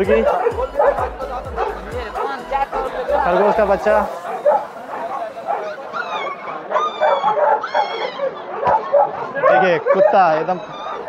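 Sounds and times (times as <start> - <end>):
crowd chatter: 0.0 - 11.0
puppies whimpering and yelping: 0.0 - 11.0.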